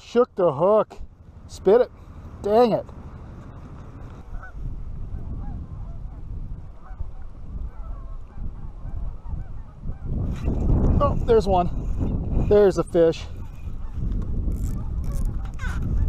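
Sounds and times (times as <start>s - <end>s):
wind buffeting microphone: 1.0s - 16.0s
distant geese honking: 1.1s - 10.2s, 13.4s - 14.1s.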